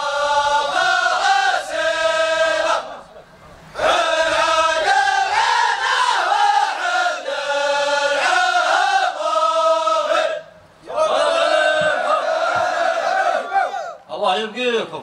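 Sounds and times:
men chanting in unison: 0.0 - 3.2, 3.8 - 14.0.

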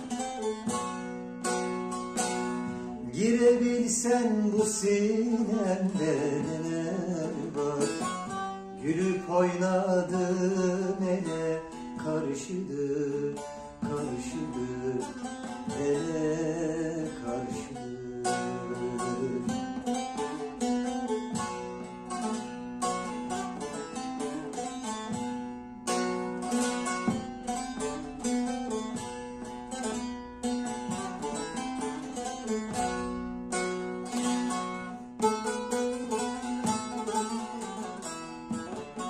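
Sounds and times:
plucked long-necked lute: 0.0 - 39.0.

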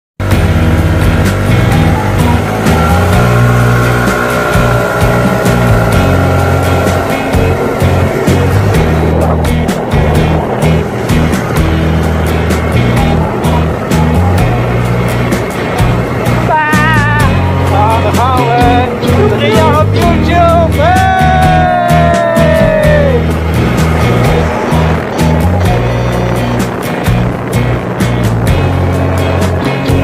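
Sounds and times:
intro music with heavy bass: 0.2 - 30.0
rising glide: 0.2 - 30.0.

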